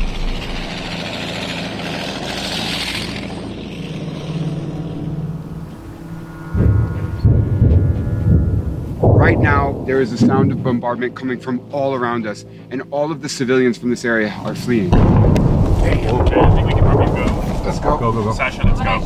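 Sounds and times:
deep irregular rumbles: 0:00.0 - 0:19.0
tracked vehicle engine and tracks: 0:00.0 - 0:19.0.

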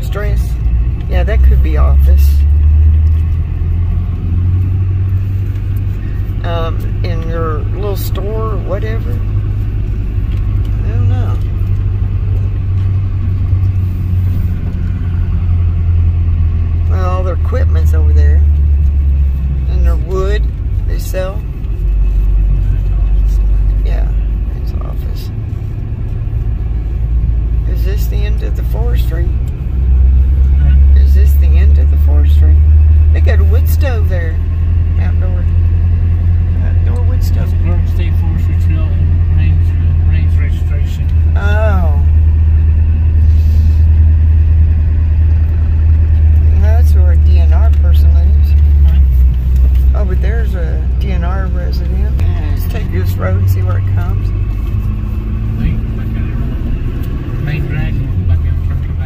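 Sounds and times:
truck engine and tyres rumbling: 0:00.0 - 0:59.0.

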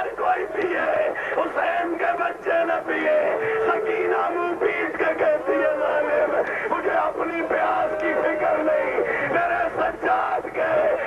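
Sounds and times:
man chanting a wailing lament: 0:00.0 - 0:11.0.

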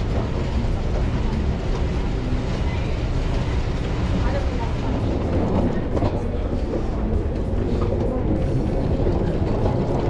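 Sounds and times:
escalator low rumble: 0:00.0 - 0:10.0.

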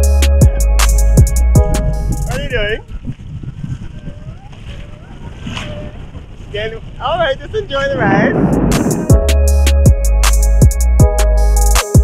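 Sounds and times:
wind buffeting microphone: 0:01.4 - 0:10.1
water rushing: 0:08.0 - 0:09.3.

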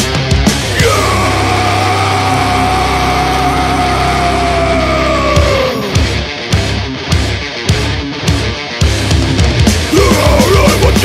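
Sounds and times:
drums: 0:00.0 - 0:11.0
long held high notes: 0:00.8 - 0:06.0.

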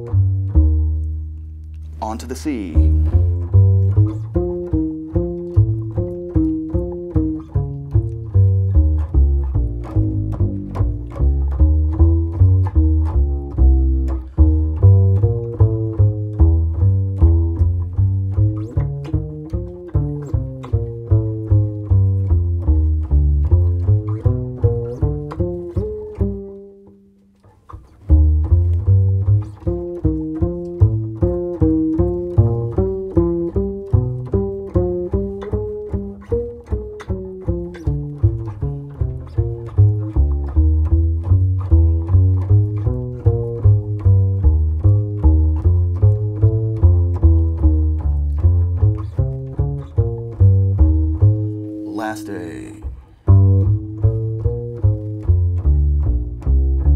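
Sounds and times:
plucked double bass: 0:00.0 - 0:56.9.

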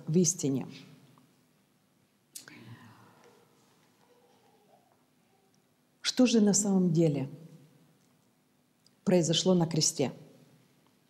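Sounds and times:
faint murmur: 0:02.6 - 0:05.6.

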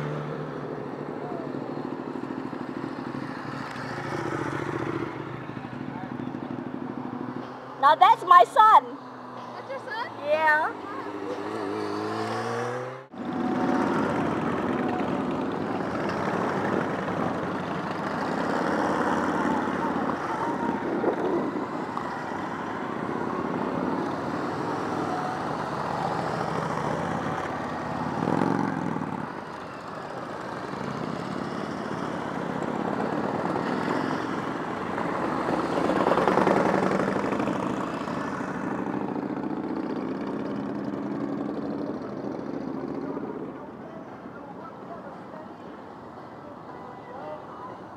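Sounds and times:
motorcycles riding past: 0:00.0 - 0:47.8.

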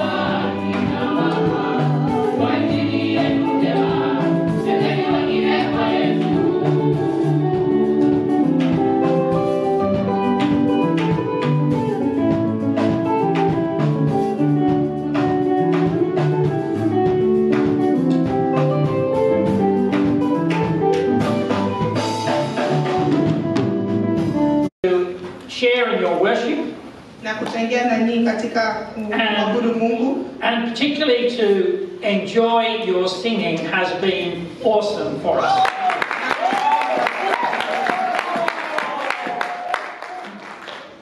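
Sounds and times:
choir singing: 0:00.0 - 0:08.2
drum kit beat: 0:00.0 - 0:24.7
guitar: 0:00.0 - 0:24.7.

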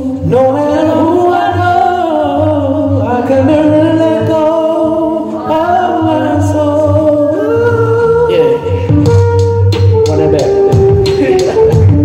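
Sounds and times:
man singing wordless melody: 0:00.0 - 0:12.0.

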